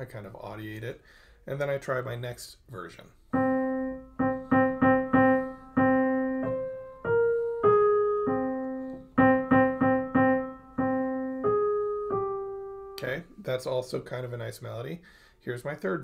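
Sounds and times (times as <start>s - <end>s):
piano melody: 3.3s - 13.2s.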